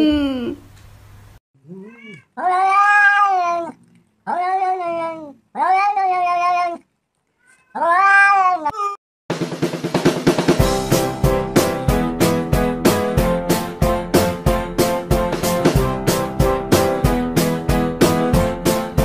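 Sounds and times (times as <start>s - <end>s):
cat meowing: 1.6s - 9.0s
music with drums: 9.3s - 19.0s.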